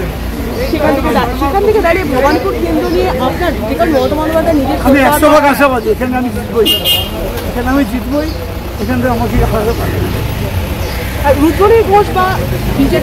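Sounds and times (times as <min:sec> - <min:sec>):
men talking: 0:00.0 - 0:11.4
traffic noise: 0:00.0 - 0:13.0.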